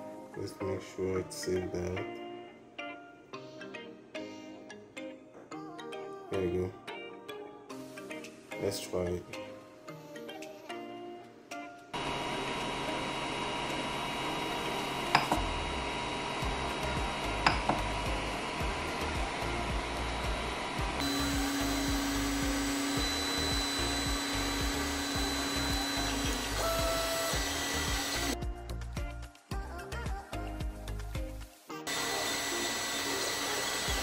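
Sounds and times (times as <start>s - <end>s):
cooling fans whirring: 12.0s - 28.4s
stepper motors humming: 12.0s - 28.4s, 31.9s - 34.0s.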